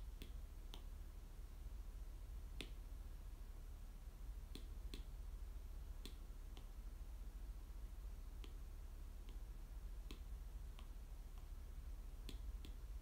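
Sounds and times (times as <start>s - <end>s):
faint hiss: 0.0s - 13.0s
steady low hum: 0.0s - 13.0s
light sharp clicks: 12.2s - 13.0s.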